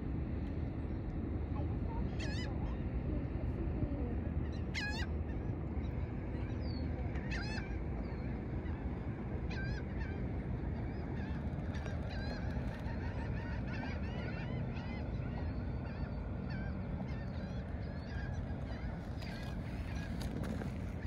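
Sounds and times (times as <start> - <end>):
bird calls: 4.5 - 8.8, 10.8 - 21.0.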